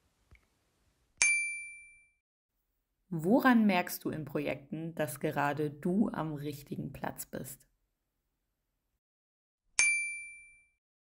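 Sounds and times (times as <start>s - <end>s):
high bell-like ding: 1.2s - 2.2s, 9.8s - 10.8s.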